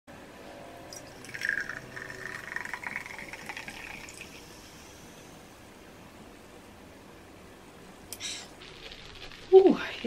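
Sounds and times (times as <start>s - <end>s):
drink pouring into a glass: 0.9s - 4.6s
fizzing crackle: 0.9s - 5.0s.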